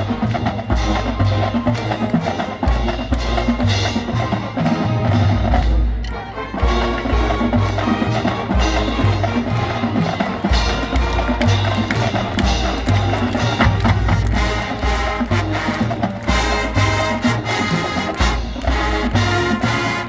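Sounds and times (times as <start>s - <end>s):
marching band playing: 0.0s - 20.0s.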